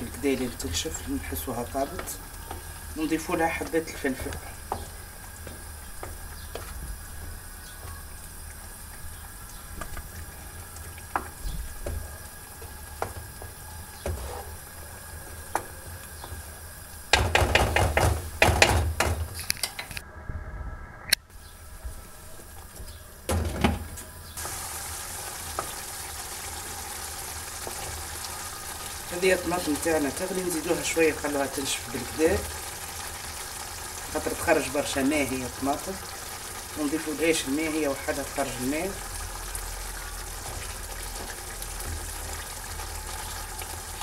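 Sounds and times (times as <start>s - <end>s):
wooden spoon stirring: 0.0s - 8.0s, 9.7s - 16.5s, 37.9s - 43.5s
sauce sizzling in a frying pan: 0.0s - 18.8s, 24.4s - 44.0s
spoon scraping a pan: 14.0s - 14.6s
spoon tapping on pan: 17.1s - 19.2s.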